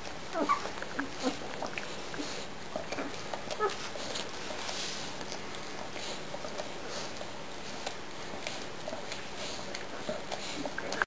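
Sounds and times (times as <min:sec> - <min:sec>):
puppies squeaking and whimpering: 0:00.3 - 0:01.5, 0:02.2 - 0:04.2.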